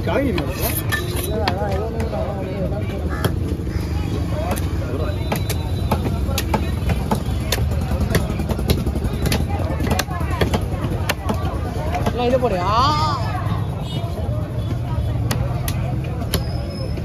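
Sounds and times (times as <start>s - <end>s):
low traffic rumble: 0.0s - 17.0s
scattered voices: 0.0s - 17.0s.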